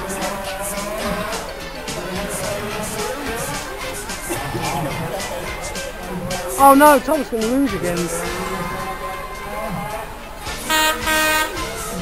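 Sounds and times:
locomotive horn toots: 0.0 - 12.0.

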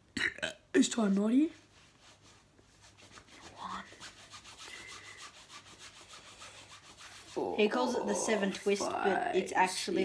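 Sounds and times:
hands rubbing fishing line: 1.6 - 8.9.

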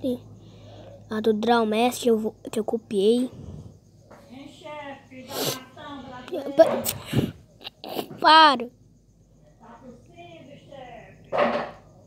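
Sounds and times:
person making breathy sounds: 6.8 - 8.2.

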